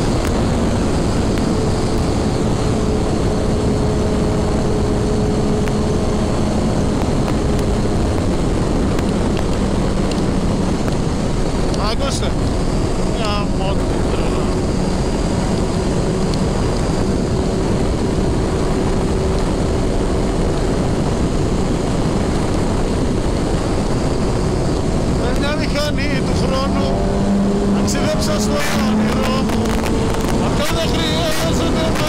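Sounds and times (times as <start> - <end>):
motorcycle engine echoing in tunnel: 0.0 - 32.0
wind rush: 0.0 - 32.0.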